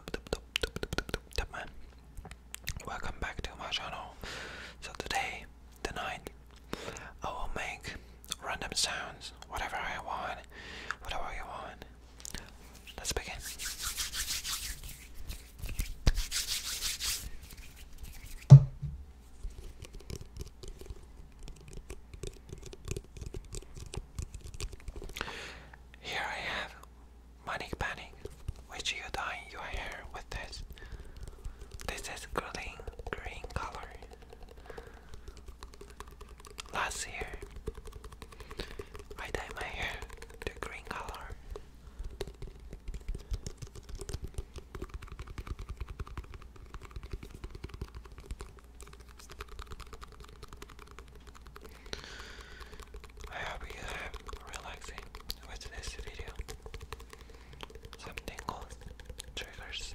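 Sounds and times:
whispering: 1.4s - 1.8s, 2.8s - 4.2s, 4.8s - 6.4s, 7.1s - 13.6s, 26.0s - 30.7s, 31.8s - 34.1s, 36.7s - 37.5s, 39.2s - 41.4s, 53.2s - 56.4s, 57.9s - 59.9s.

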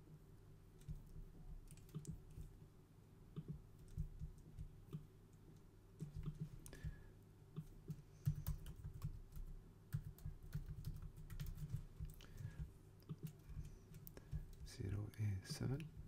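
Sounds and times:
computer keyboard typing: 0.8s - 2.5s, 3.3s - 5.0s, 7.6s - 14.8s.

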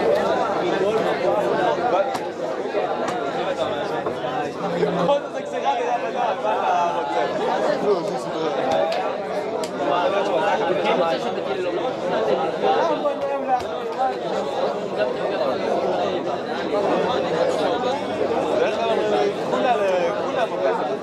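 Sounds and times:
many men talking: 0.0s - 21.0s.

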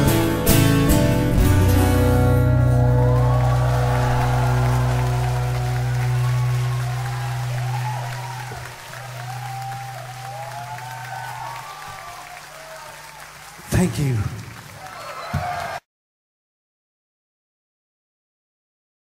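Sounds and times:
acoustic guitar chord ringing: 0.0s - 10.9s
crowd applauding and cheering: 2.0s - 15.8s
high-pitched screams: 2.7s - 13.2s.

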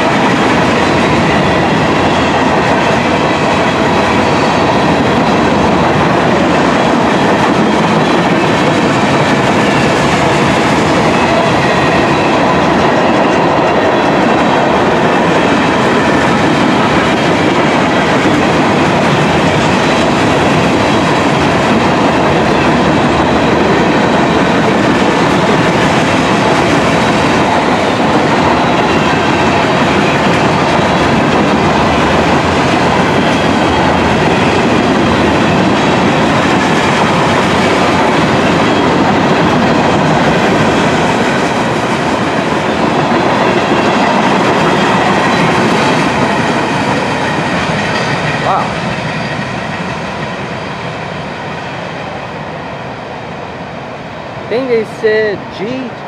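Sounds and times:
clickety-clack over rail joints: 0.0s - 52.0s
freight train wheels rumbling on rails: 0.0s - 56.0s.

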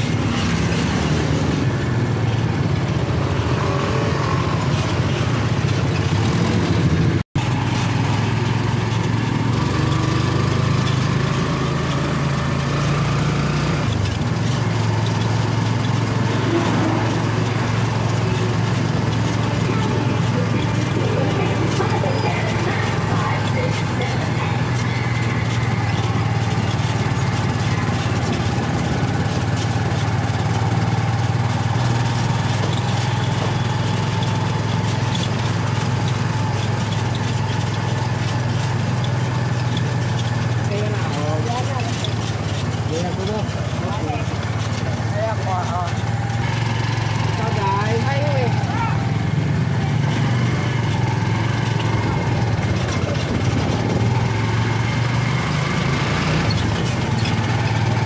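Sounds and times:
traffic and road noise: 0.0s - 58.0s
vehicle engine running: 0.0s - 58.0s.

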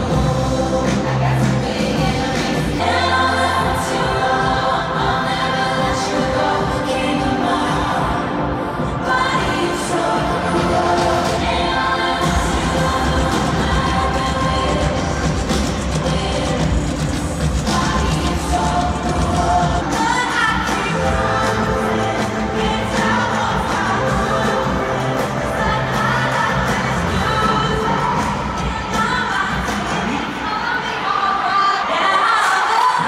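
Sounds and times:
amplified live pop music: 0.0s - 33.0s
woman singing: 0.0s - 33.0s.

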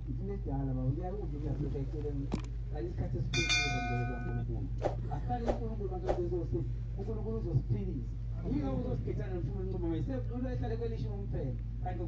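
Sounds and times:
bright bell chime: 3.4s - 4.4s.

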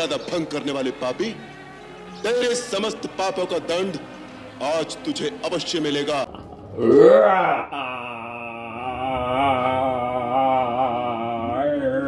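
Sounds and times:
chanted vocal tone: 0.2s - 12.0s
man's deep vocal cry: 6.8s - 12.0s.

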